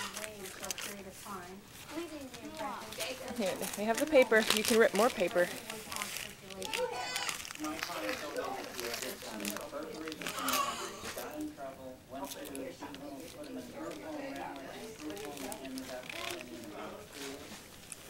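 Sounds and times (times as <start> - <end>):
wrapping paper crinkling and tearing: 0.0 - 11.4, 12.2 - 18.0
voices chattering: 0.0 - 17.8.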